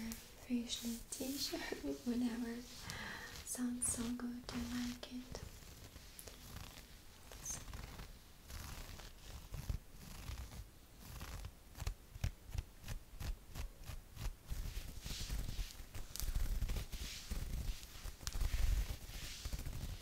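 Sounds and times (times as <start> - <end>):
fingernails scratching mesh fabric: 0.0 - 20.0.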